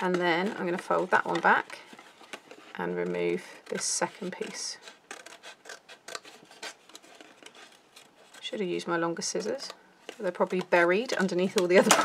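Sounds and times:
scissors snipping cardstock: 0:03.3 - 0:06.8.

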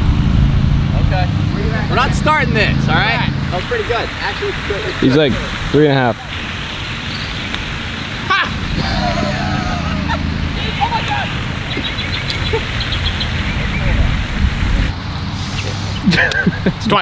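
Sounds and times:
low rumble and hiss: 0:00.0 - 0:17.0.

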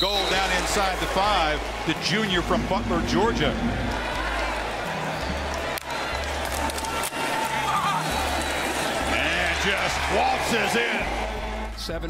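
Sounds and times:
hip-hop music with deep bass: 0:00.0 - 0:12.0
stadium crowd noise: 0:00.0 - 0:12.0.

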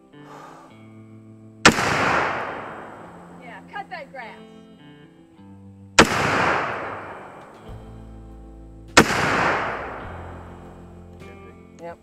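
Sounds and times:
background music with guitar: 0:00.0 - 0:12.0
rifle shots with echo: 0:01.6 - 0:03.6, 0:06.0 - 0:07.9, 0:09.0 - 0:10.8.

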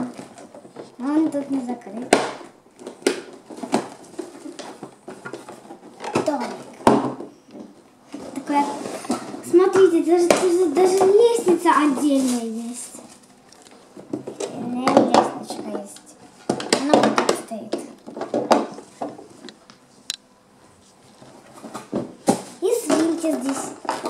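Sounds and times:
child talking: 0:00.0 - 0:00.2, 0:01.0 - 0:02.2, 0:06.1 - 0:07.0, 0:08.2 - 0:13.1, 0:14.4 - 0:18.0, 0:22.6 - 0:23.9
plastic toy parts clattering: 0:22.8 - 0:24.0.

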